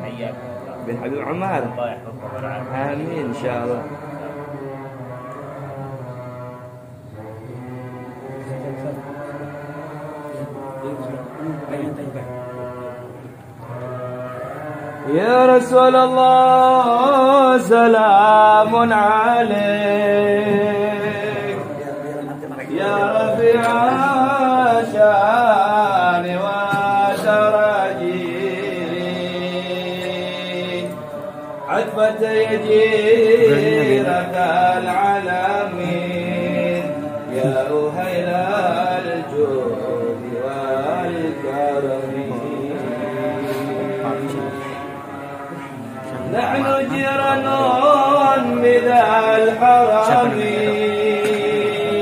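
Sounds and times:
men chanting low notes: 0:00.0 - 0:52.0.

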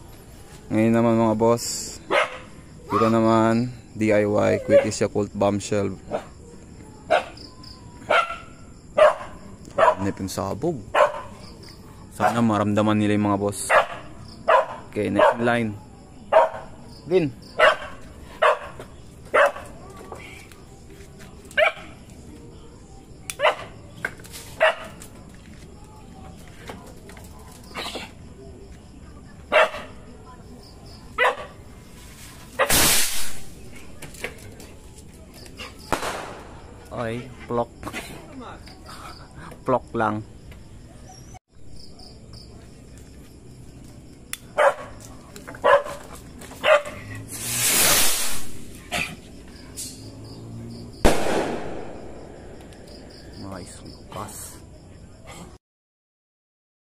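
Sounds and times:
dog barking: 0:02.1 - 0:03.2, 0:04.6 - 0:05.0, 0:07.1 - 0:07.4, 0:08.0 - 0:10.2, 0:10.9 - 0:11.4, 0:12.2 - 0:12.4, 0:13.7 - 0:15.5, 0:16.3 - 0:16.8, 0:17.5 - 0:19.7, 0:21.6 - 0:22.0, 0:23.4 - 0:23.8, 0:24.6 - 0:25.0, 0:29.5 - 0:30.0, 0:31.2 - 0:31.6, 0:44.6 - 0:45.0, 0:45.6 - 0:46.0, 0:46.6 - 0:47.0
skyrocket launching with rushing hiss: 0:32.6 - 0:33.6, 0:47.2 - 0:48.8.

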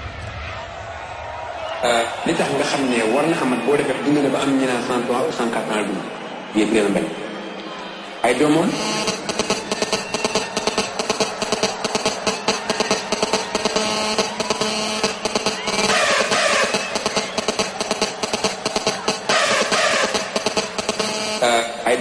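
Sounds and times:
hardstyle dance music: 0:08.5 - 0:22.0.

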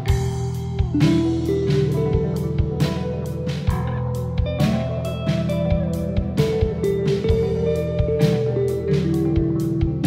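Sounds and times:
drum and cymbal hits: 0:00.0 - 0:10.0
guitar sustained notes: 0:00.0 - 0:10.0
instrumental metal music: 0:00.0 - 0:10.0.

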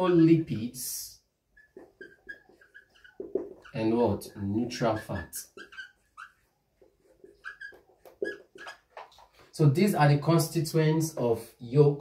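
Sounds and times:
whiteboard marker squeaking: 0:01.4 - 0:09.5.

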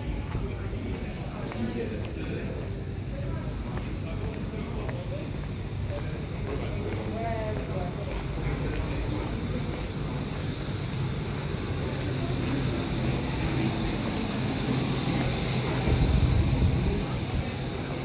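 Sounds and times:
faint distant voices: 0:00.0 - 0:18.0
street ambience rumble: 0:00.0 - 0:18.0.

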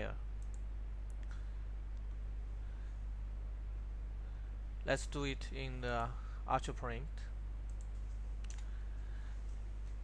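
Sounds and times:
steady low hum: 0:00.0 - 0:10.0
computer mouse clicks: 0:00.4 - 0:01.4, 0:07.7 - 0:08.7.

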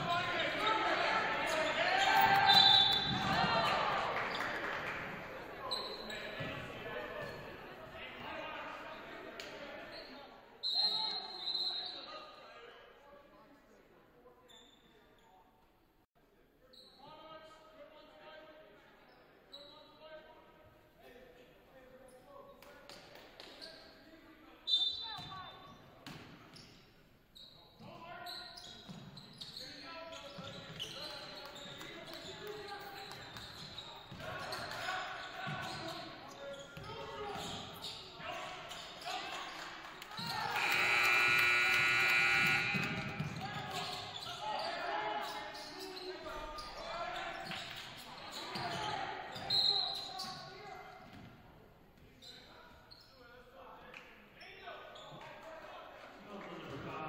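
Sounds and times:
voices echoing in hall: 0:00.0 - 0:15.6, 0:16.2 - 0:57.0
referee whistle blast: 0:02.4 - 0:03.2, 0:40.6 - 0:43.2
loud shrill sound: 0:40.5 - 0:43.1.

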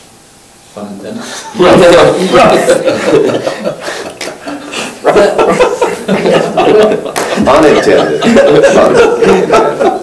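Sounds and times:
group of adults laughing: 0:01.4 - 0:10.0.

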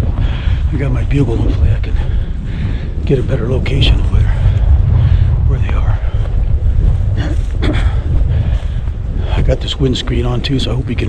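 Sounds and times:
strong wind buffeting microphone: 0:00.0 - 0:11.0.

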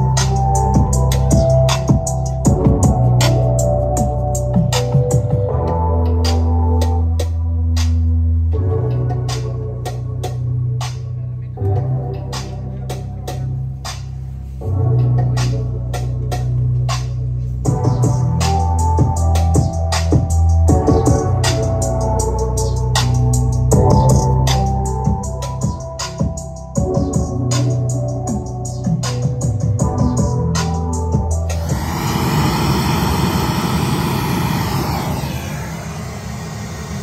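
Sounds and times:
electronic music with heavy bass: 0:00.0 - 0:37.0.

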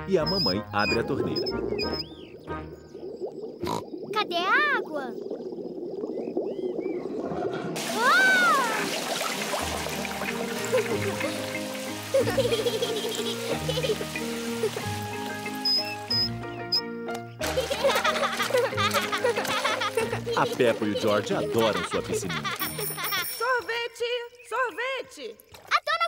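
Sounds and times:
squeak: 0:00.2 - 0:02.2
garden hose gurgling and spraying: 0:00.2 - 0:16.4, 0:17.4 - 0:23.3
water splashing in pool: 0:00.8 - 0:16.4, 0:17.4 - 0:23.3
cheerful music cue: 0:09.6 - 0:23.4.

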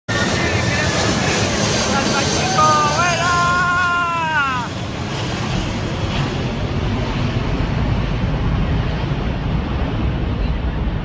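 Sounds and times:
jet engines roaring overhead: 0:00.1 - 0:11.0.

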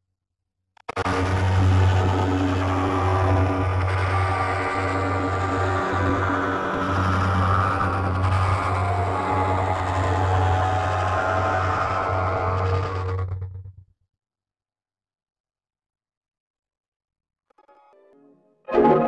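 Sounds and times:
distorted logo music drone: 0:00.9 - 0:13.5.

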